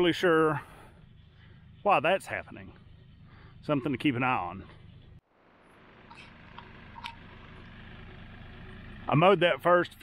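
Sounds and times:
distant tractor engine drone: 0:00.0 - 0:10.0.

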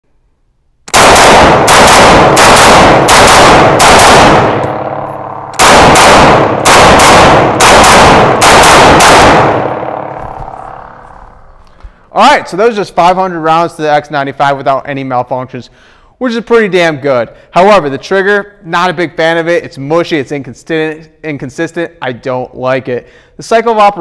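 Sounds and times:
shots echoing indoors: 0:00.8 - 0:11.6
rifle shots rapid fire: 0:00.9 - 0:10.9.

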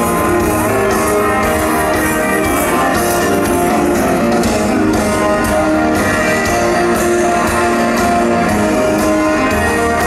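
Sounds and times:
bass: 0:00.0 - 0:10.0
drums: 0:00.0 - 0:10.0
electric guitars: 0:00.0 - 0:10.0
keyboards: 0:00.0 - 0:10.0.

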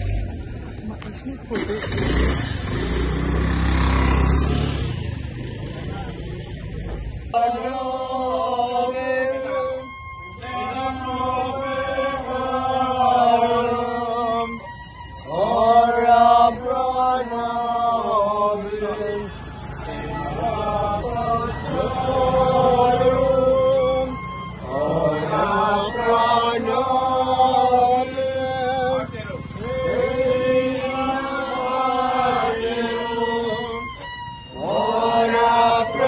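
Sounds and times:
congregation singing a hymn: 0:07.3 - 0:14.6, 0:15.3 - 0:33.9, 0:34.5 - 0:36.0
voices chanting in unison: 0:07.3 - 0:36.0
violin playing: 0:07.4 - 0:36.0.

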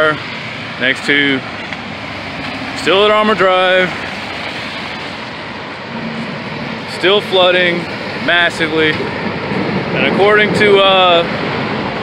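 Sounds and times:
floodwater rushing: 0:00.0 - 0:12.0
traffic noise: 0:00.0 - 0:12.0
truck engine hum: 0:00.0 - 0:12.0.

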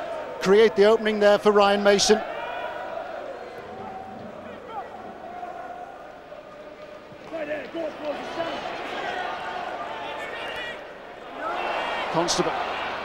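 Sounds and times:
fans shouting: 0:00.0 - 0:13.0
murmur of crowd voices: 0:00.0 - 0:13.0.

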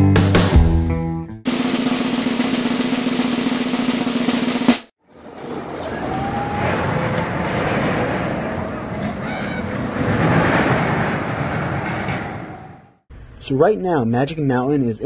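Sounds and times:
roller coaster rumbling on track: 0:05.1 - 0:13.0
faint voices: 0:05.4 - 0:10.3.

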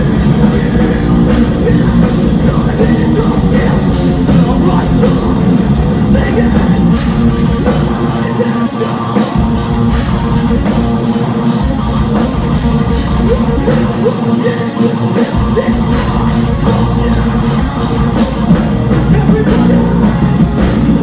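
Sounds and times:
distorted electric guitars: 0:00.0 - 0:21.0
drum kit: 0:00.0 - 0:21.0
vocals: 0:00.0 - 0:21.0.

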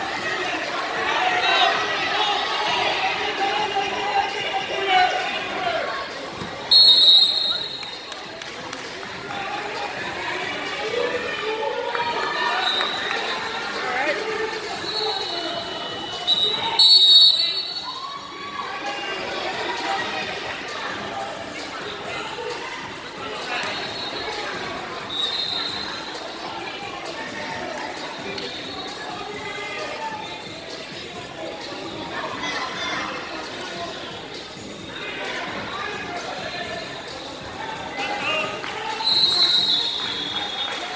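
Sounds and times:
overlapping crowd voices: 0:00.0 - 0:40.9
referee's whistle blast: 0:06.7 - 0:07.8, 0:14.8 - 0:17.9, 0:39.0 - 0:40.8.

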